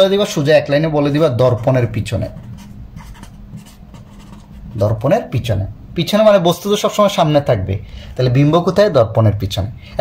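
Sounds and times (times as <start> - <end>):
man talking: 0.0 - 2.5, 4.7 - 10.0
pen scratching on paper: 1.5 - 4.8.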